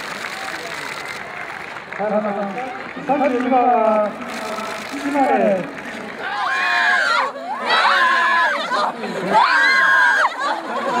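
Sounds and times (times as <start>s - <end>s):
group cheering in high shouts: 6.2s - 11.0s.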